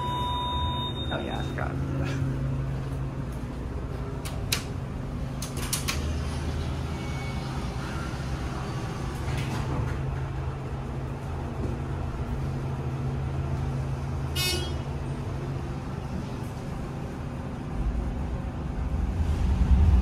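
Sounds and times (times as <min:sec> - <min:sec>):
short high tone: 0:00.0 - 0:01.5
elevator low hum: 0:00.0 - 0:20.0.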